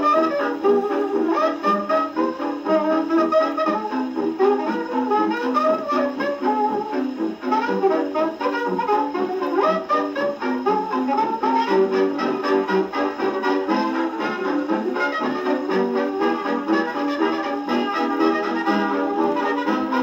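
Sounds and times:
jazz dance band on gramophone: 0.0s - 20.0s.

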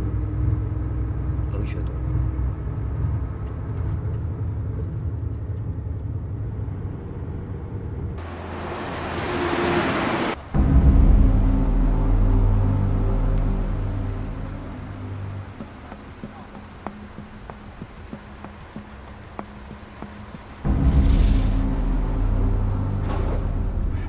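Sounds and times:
deep low rumble: 0.0s - 8.2s, 10.6s - 15.6s, 20.6s - 24.0s
bus engine rumbling: 0.0s - 24.0s.

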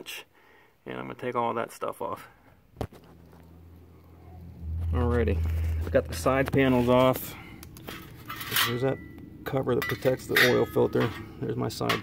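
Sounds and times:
low steady engine hum: 2.8s - 9.9s.

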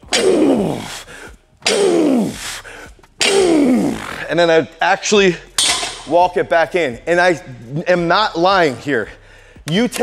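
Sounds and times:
man groaning with effort: 0.1s - 1.0s, 1.7s - 2.4s, 3.2s - 4.2s.

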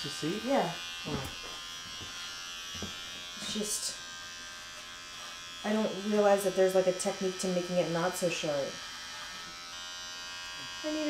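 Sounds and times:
electric hair clippers buzzing: 0.0s - 11.0s.

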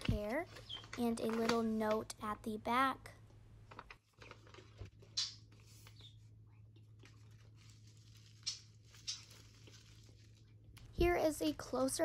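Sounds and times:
plastic packaging crinkling: 0.0s - 2.1s, 3.6s - 6.1s, 6.8s - 10.9s
faint low hum: 0.0s - 12.0s.

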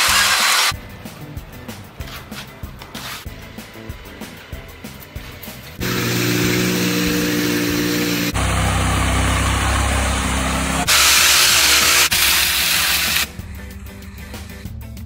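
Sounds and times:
music: 0.0s - 8.4s, 10.8s - 15.0s
machinery engine hum: 5.7s - 11.0s
deeper engine hum: 5.8s - 11.2s, 13.3s - 15.0s.

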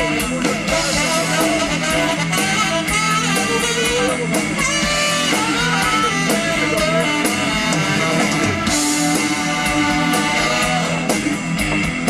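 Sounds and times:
saxophone melody: 0.0s - 11.6s
drum kit with cymbal beat: 0.0s - 12.0s
electric guitar: 0.0s - 12.0s.

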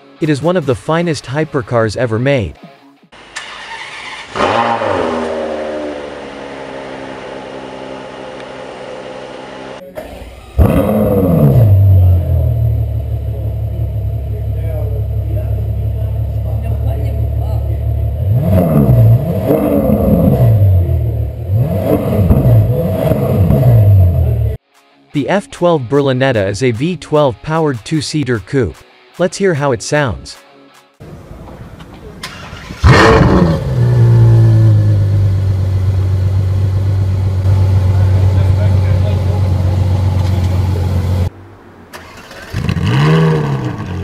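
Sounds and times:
car engine starting and idling: 3.2s - 24.6s, 31.0s - 44.0s
engine throttle blips: 4.2s - 24.6s.

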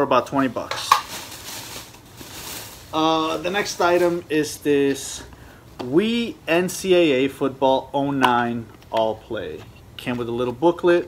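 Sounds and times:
plastic bag rustling: 0.5s - 4.4s.

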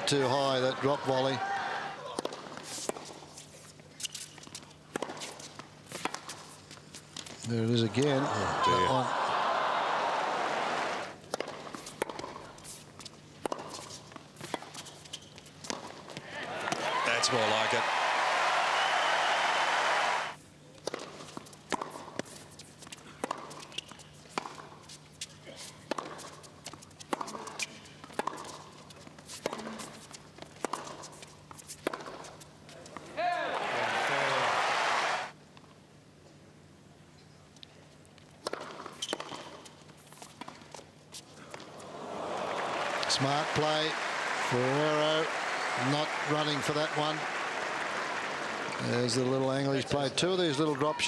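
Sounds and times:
tennis ball bouncing on court: 2.0s - 3.2s, 4.4s - 6.5s, 11.2s - 17.1s, 20.8s - 33.7s, 38.4s - 40.9s
tennis ball struck by rackets: 4.9s - 5.3s, 11.2s - 12.5s, 13.4s - 14.9s, 20.8s - 22.3s, 25.9s - 28.7s, 29.4s - 31.2s, 31.8s - 32.3s
crowd applauding: 7.9s - 11.1s, 16.4s - 20.4s, 33.4s - 35.3s, 41.9s - 49.4s.

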